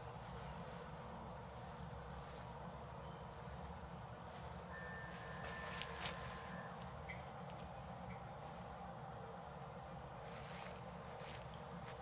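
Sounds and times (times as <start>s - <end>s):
thin high tone: 4.4s - 7.2s.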